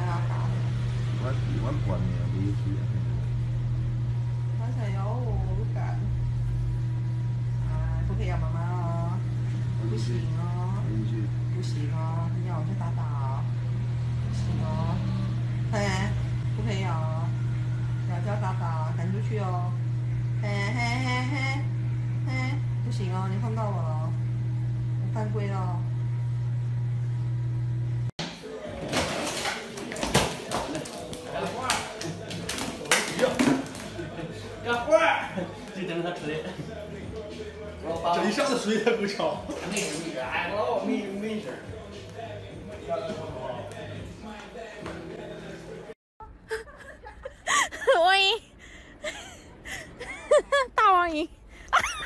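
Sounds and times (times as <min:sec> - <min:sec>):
steady low hum: 0:00.0 - 0:28.1.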